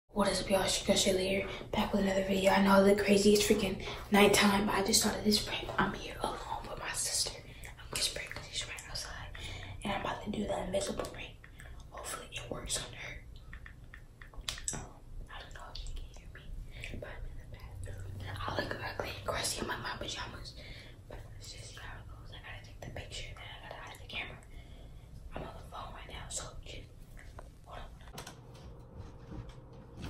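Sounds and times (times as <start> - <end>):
girl whispering: 0.2 - 13.3, 15.3 - 24.5, 25.3 - 26.9, 27.6 - 28.2.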